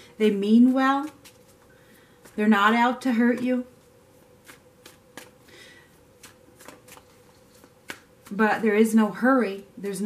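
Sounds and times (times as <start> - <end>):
faint steady hum: 0.0 - 10.0
cards clicking and tapping: 4.4 - 5.4, 6.2 - 8.4.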